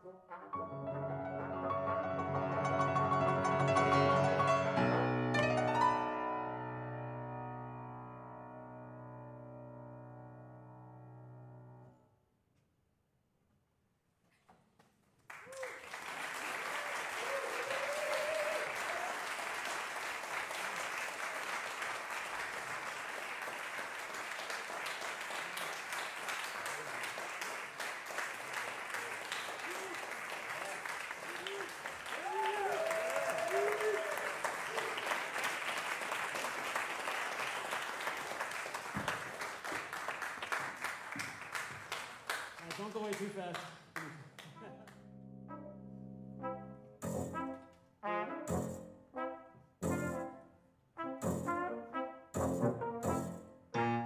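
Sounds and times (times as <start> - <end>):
audience applauding: 15.2 - 45.0.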